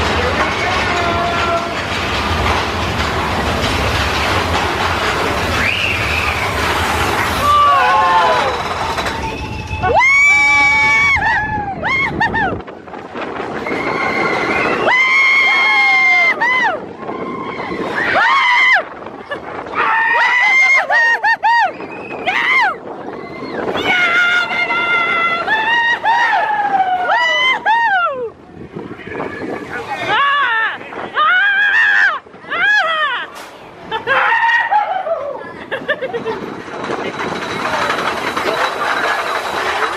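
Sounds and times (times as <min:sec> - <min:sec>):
low rumble of coaster train: 0:00.0 - 0:39.9
roller coaster riders screaming: 0:00.0 - 0:39.9.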